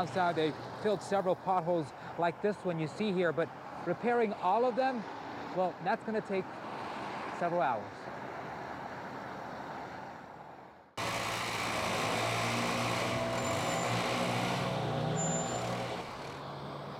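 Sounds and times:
roadside traffic noise: 0:00.0 - 0:16.9
compressed air blasting water and grit: 0:11.0 - 0:16.4
heavy engine running: 0:11.0 - 0:16.7.

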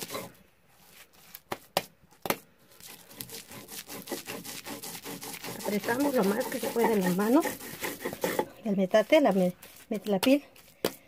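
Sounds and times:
soft crumbly rustling: 0:00.7 - 0:01.5, 0:08.1 - 0:11.0
hands pressing dough on stone: 0:01.3 - 0:11.0.

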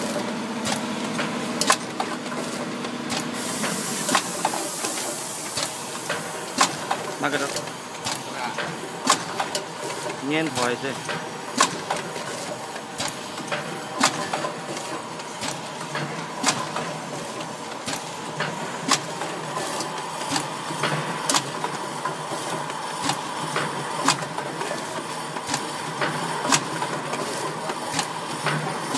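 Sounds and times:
packing machine humming: 0:00.0 - 0:28.9
sharp mechanical clicks: 0:04.1 - 0:16.8, 0:17.4 - 0:28.9.

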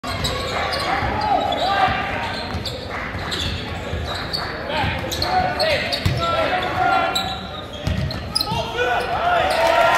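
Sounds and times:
sneaker squeaks: 0:00.0 - 0:09.7.

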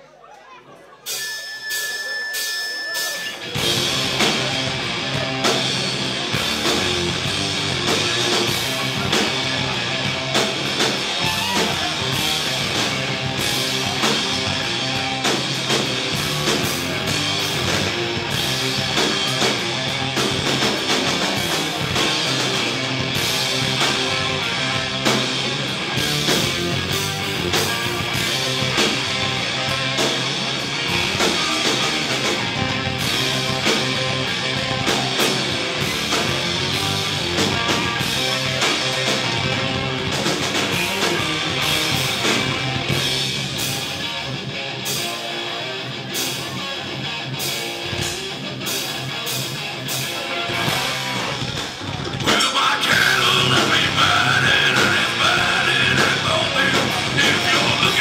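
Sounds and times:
heavy metal band playing: 0:01.0 - 0:58.0.

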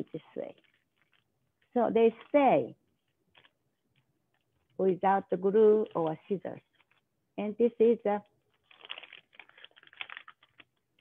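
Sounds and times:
paper crackling and rustling: 0:00.1 - 0:04.8, 0:05.6 - 0:07.1, 0:08.4 - 0:11.0.

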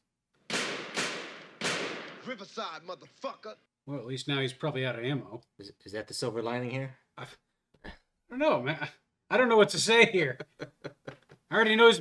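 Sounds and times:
gunshots with ringing echo: 0:00.5 - 0:02.5.

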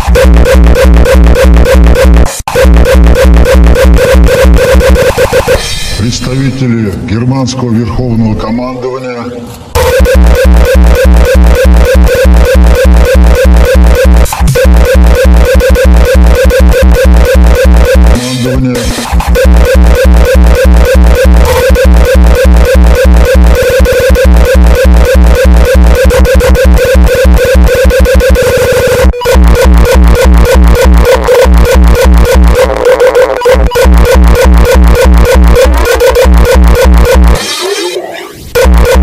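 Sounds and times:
distorted kick drum: 0:00.0 - 0:06.0, 0:09.8 - 0:37.4, 0:38.5 - 0:39.0
stuttering distorted synth riff: 0:00.0 - 0:06.0, 0:09.8 - 0:39.0.

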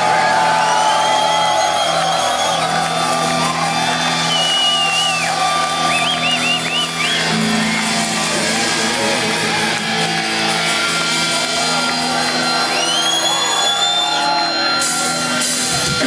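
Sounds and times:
crowd shouting along: 0:00.0 - 0:16.0
live thrash band playing: 0:00.0 - 0:16.0.

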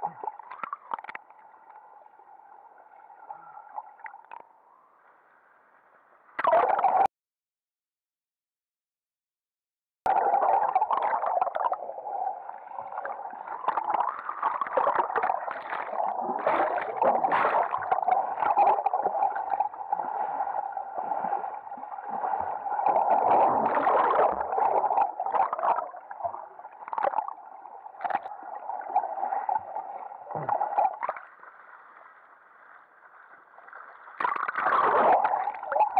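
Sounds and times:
muffled underwater churning: 0:10.1 - 0:35.9.

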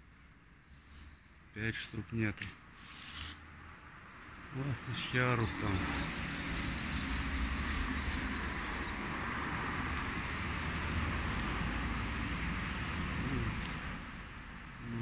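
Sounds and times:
vehicle engine rumbling: 0:04.4 - 0:15.0.

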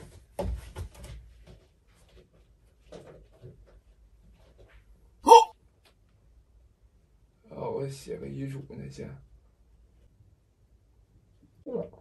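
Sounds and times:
man's short rising vocal sound: 0:05.3 - 0:05.5.

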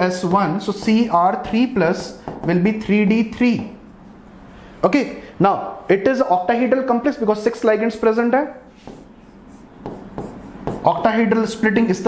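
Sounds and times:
pen scratching on writing board: 0:08.8 - 0:11.0.

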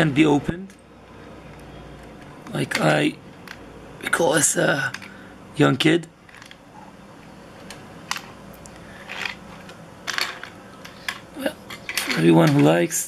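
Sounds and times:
toy cars clicking: 0:06.3 - 0:06.6, 0:09.0 - 0:12.8.

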